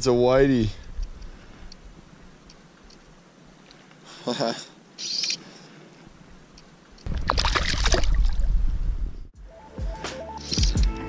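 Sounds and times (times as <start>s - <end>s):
water splashing and sloshing: 7.0s - 8.6s
music: 9.4s - 11.0s.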